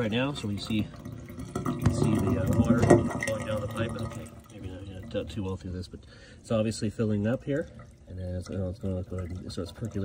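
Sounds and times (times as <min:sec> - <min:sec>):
water running into bucket: 0:00.0 - 0:10.0
man talking: 0:01.8 - 0:10.0.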